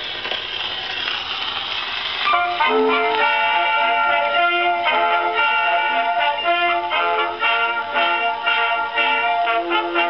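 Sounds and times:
record surface hiss: 0:00.0 - 0:10.0.

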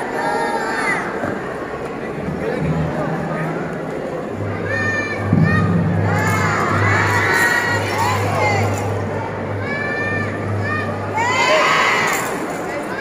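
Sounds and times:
murmur of a crowd: 0:00.0 - 0:13.0
children shouting and cheering: 0:04.4 - 0:13.0.

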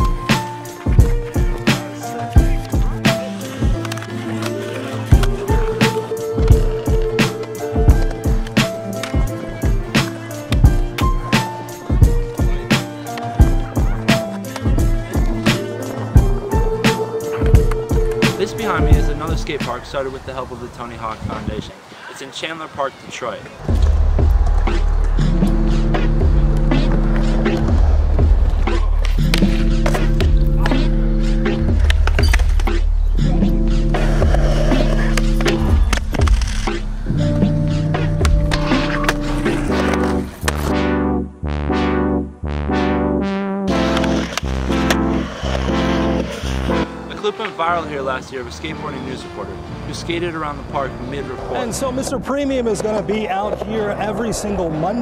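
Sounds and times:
skateboard clacks: 0:00.0 - 0:16.0
background music with steady beat: 0:00.0 - 0:19.8, 0:23.6 - 0:52.2
skateboard on concrete: 0:00.0 - 0:19.8, 0:23.5 - 0:33.1, 0:33.7 - 0:36.9, 0:37.9 - 0:40.7, 0:43.7 - 0:47.6.

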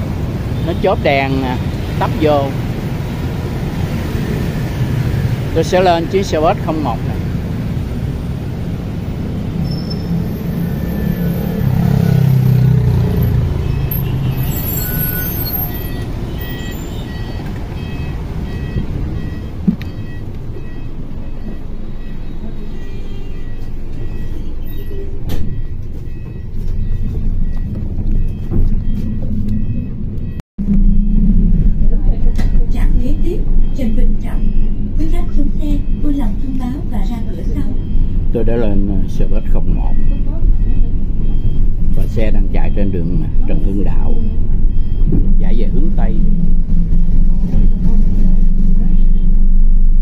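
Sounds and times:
bus engine rumble: 0:00.0 - 0:50.0
high electronic beeping: 0:09.0 - 0:50.0.

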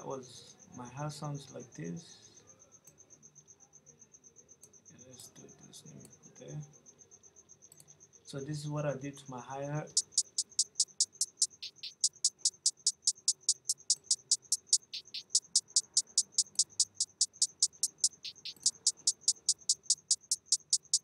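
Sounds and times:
programmed trap hi-hat pattern: 0:09.9 - 0:21.0.

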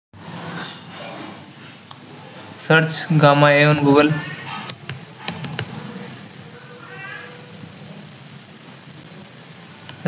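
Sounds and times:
background hiss: 0:00.2 - 0:10.0.

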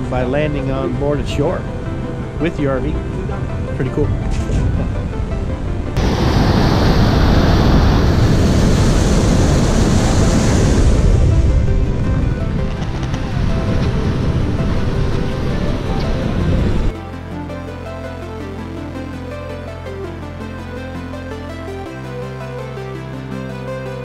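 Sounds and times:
water rushing along hull: 0:00.0 - 0:17.0
background music: 0:00.0 - 0:24.0
wind on microphone: 0:01.5 - 0:17.0.

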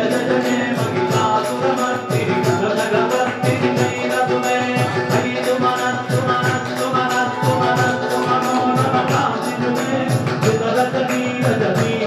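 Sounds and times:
devotional chant singing: 0:00.0 - 0:12.0
instrumental music: 0:00.0 - 0:12.0
steady percussion beat: 0:00.0 - 0:12.0.

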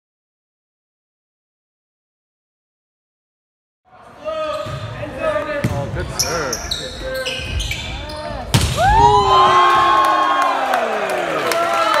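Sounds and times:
volleyball impact: 0:08.5 - 0:09.8.

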